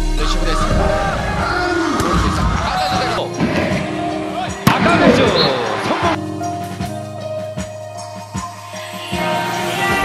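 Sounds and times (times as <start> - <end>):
background music: 0.0 - 10.0
crowd shouting: 0.8 - 6.2
commentator speaking: 4.7 - 6.2.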